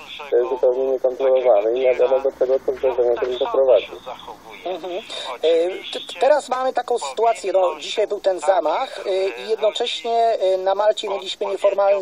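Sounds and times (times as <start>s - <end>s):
person talking on radio: 0.0s - 12.0s.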